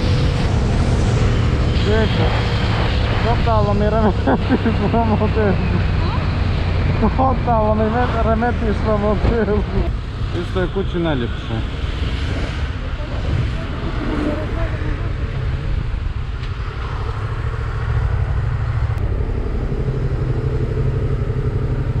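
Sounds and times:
motorcycle engine rumble: 12.7s - 22.0s.

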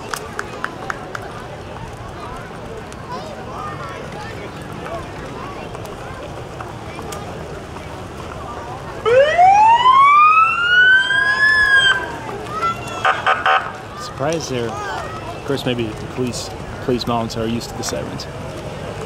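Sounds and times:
police siren wail: 9.0s - 12.2s, 13.0s - 13.8s.

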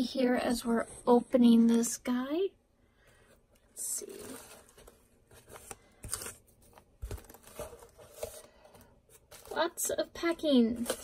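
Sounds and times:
paper packing rustling: 3.9s - 11.0s.

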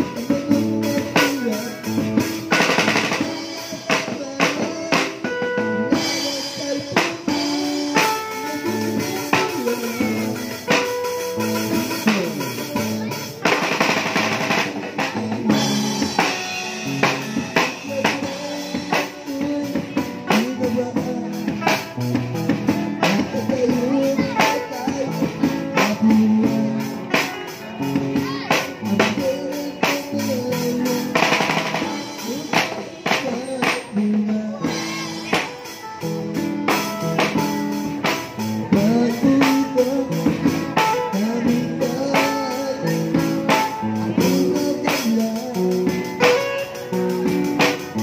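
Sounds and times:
drum kit playing beat: 0.0s - 48.0s
song with singing and guitar: 0.0s - 48.0s.

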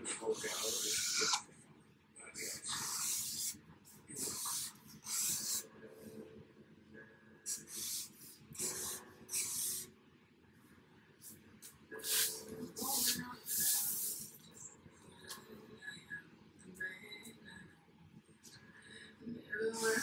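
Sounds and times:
marker scratching on poster board: 0.3s - 1.4s, 2.4s - 5.7s, 7.5s - 9.9s, 11.6s - 14.4s.

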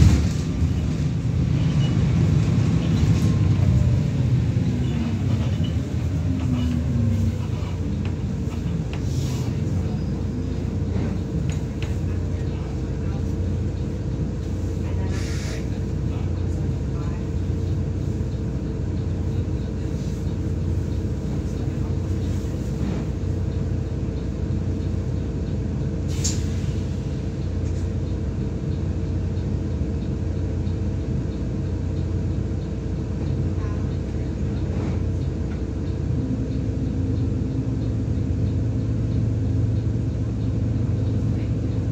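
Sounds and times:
bus diesel engine idling: 0.0s - 41.9s.

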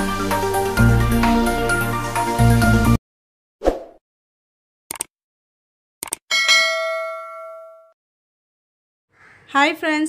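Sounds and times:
notification bell ding: 6.3s - 8.0s.

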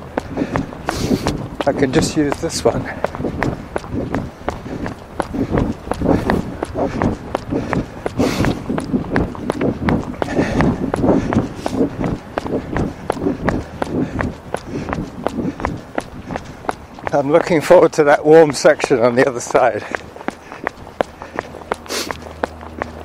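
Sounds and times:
running footsteps on trail: 0.0s - 23.0s.

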